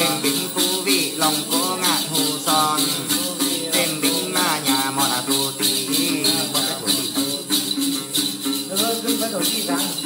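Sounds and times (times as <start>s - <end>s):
man chanting: 0.0s - 7.7s
jingle bells shaken: 0.0s - 10.0s
plucked lute: 0.0s - 10.0s.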